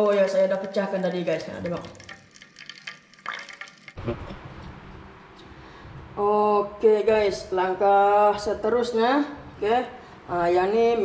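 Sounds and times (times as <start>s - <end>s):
steady low rushing noise: 4.0s - 10.6s.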